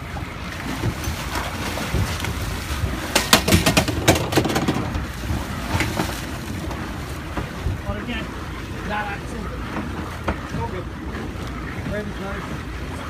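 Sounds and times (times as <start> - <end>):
boat engines running: 0.0 - 13.0
water churning: 0.0 - 13.0
wind buffeting microphone: 0.0 - 13.0.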